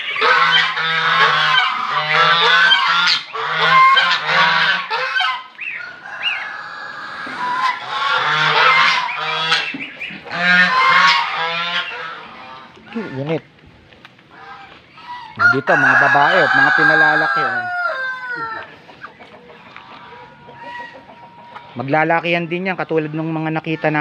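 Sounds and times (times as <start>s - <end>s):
geese honking: 0.0s - 13.5s, 14.2s - 24.0s.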